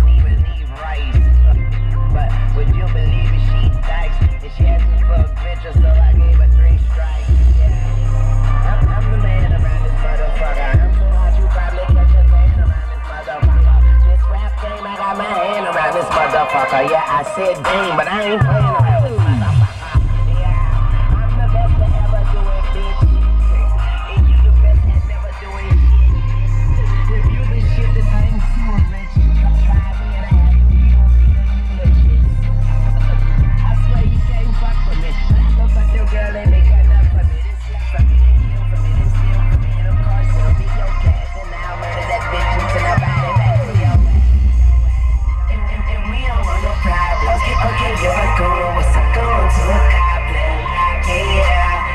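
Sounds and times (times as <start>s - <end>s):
heavy bass: 0.0s - 51.9s
hip hop through subwoofers: 0.0s - 51.9s.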